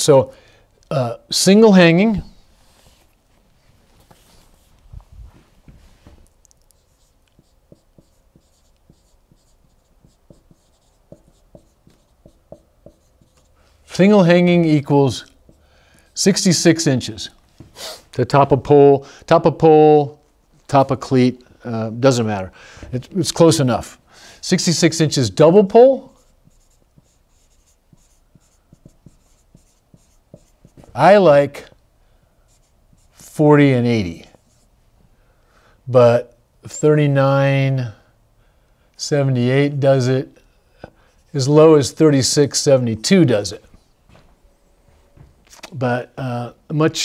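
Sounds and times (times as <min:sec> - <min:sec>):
marker writing on whiteboard: 0:06.7 - 0:13.6, 0:15.2 - 0:15.6, 0:26.1 - 0:31.0, 0:32.5 - 0:33.3.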